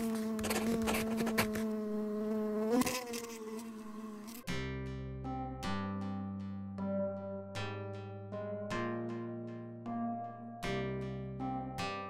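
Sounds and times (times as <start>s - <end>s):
cartoon bee buzzing: 0.0s - 4.5s.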